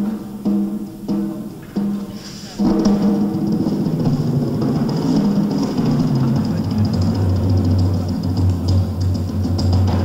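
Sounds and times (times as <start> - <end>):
fast tom drum rolls: 0.0 - 10.0.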